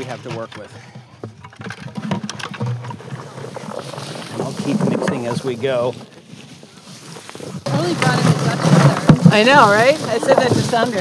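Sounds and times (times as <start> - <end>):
flower bulbs pouring into wheelbarrow: 3.0 - 11.0.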